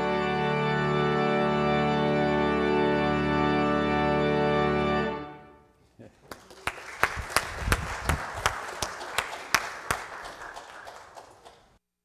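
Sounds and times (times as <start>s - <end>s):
crowd applauding: 6.1s - 11.8s
sharp individual claps: 6.2s - 11.8s.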